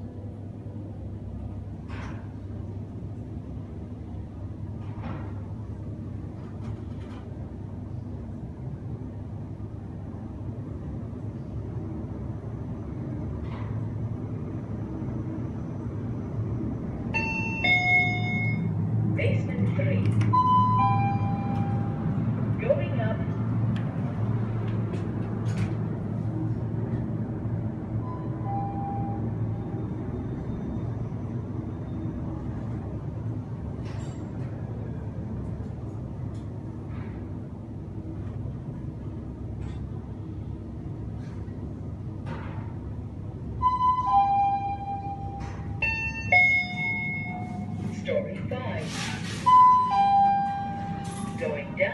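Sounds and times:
lift car humming: 0.0s - 51.9s.

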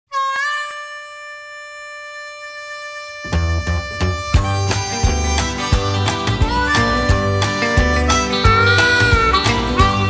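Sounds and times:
harmonica long bending note: 0.1s - 10.0s.

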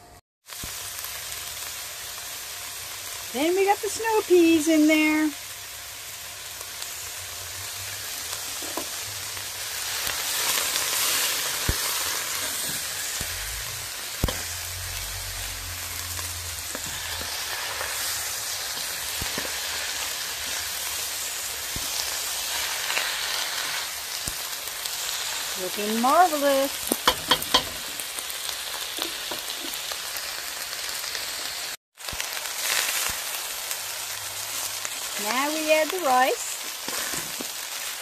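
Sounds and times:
vegetables sizzling in a wok: 0.0s - 38.0s
spatula scraping a wok: 8.2s - 24.1s, 36.6s - 38.0s.

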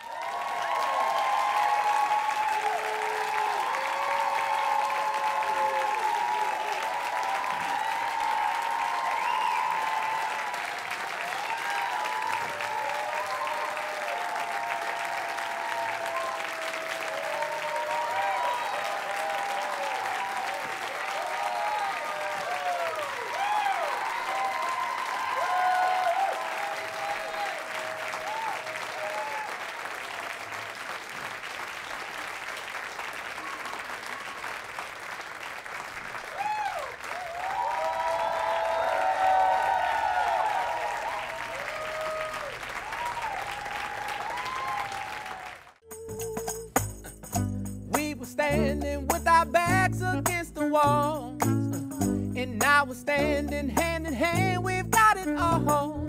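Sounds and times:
whoops from crowd: 0.0s - 29.7s, 36.3s - 46.0s
audience applauding: 0.0s - 45.9s.

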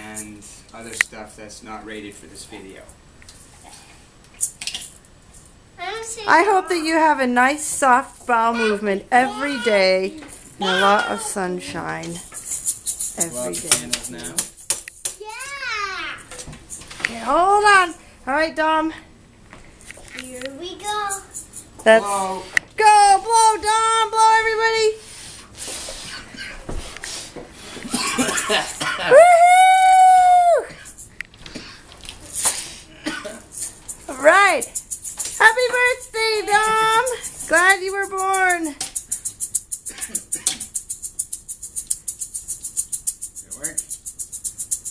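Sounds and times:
toy maraca rattling: 4.4s - 18.0s, 20.0s - 22.3s, 28.0s - 29.2s, 30.7s - 31.2s, 33.3s - 44.9s.

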